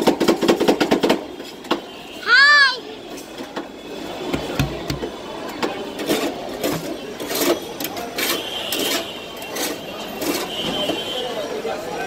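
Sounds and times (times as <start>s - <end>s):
dull thuds: 4.3s - 5.2s
metal spatulas clacking and scraping: 4.4s - 11.0s.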